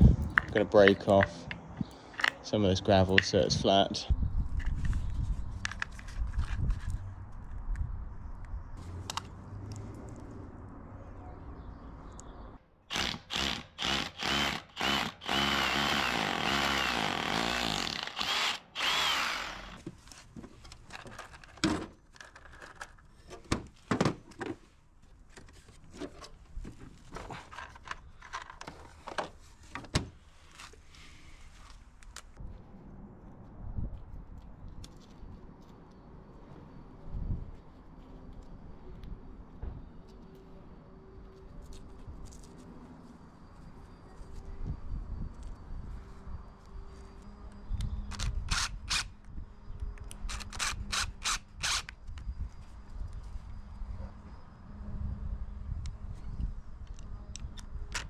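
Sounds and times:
power drill drilling into masonry: 0:12.9 - 0:19.8, 0:50.4 - 0:51.9
tools and plastic cases clicking: 0:20.7 - 0:23.5.

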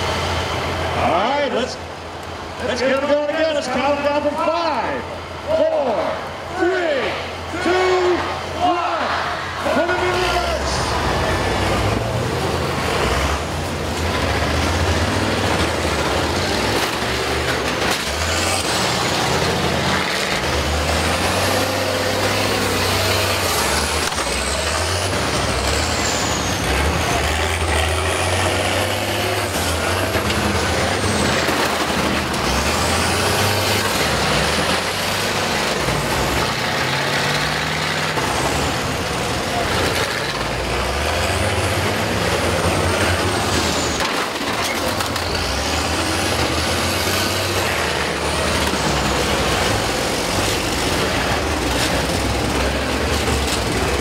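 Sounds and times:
bus engines revving: 0:00.0 - 0:54.0.

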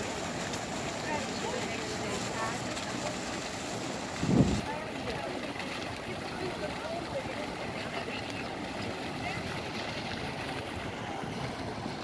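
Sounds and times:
fountain splashing into pool: 0:00.0 - 0:12.0
crowd chatter: 0:00.9 - 0:11.7.

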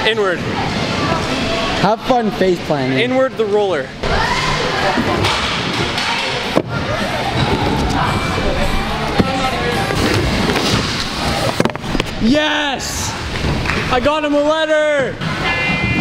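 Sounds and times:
background music: 0:04.0 - 0:13.3.

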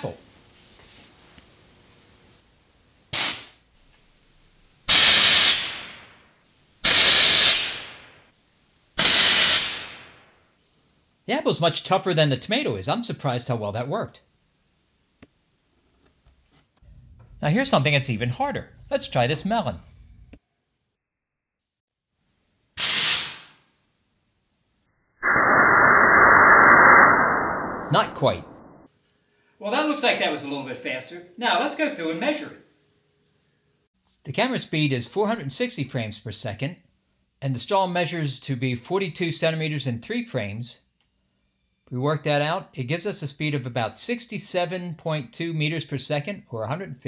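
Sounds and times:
sharp compressed air hiss: 0:03.1 - 0:03.6, 0:04.9 - 0:06.1, 0:06.8 - 0:08.2, 0:09.0 - 0:10.9, 0:22.8 - 0:23.6
compressed air blow-gun hissing: 0:03.2 - 0:03.6, 0:22.8 - 0:23.5.

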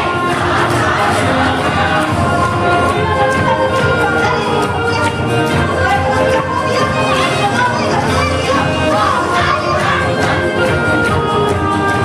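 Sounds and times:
loud dance music: 0:00.0 - 0:12.0.

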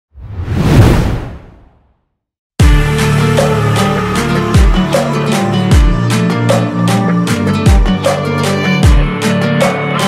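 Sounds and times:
whoosh sound effect: 0:00.1 - 0:02.0.

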